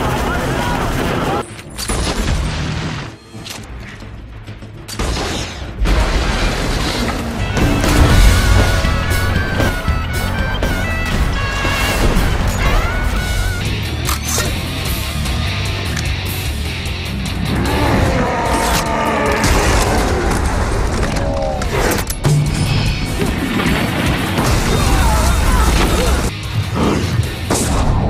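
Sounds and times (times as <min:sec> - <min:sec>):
dramatic orchestral score: 0:00.0 - 0:28.0
explosions booming: 0:05.8 - 0:10.2, 0:22.4 - 0:26.3.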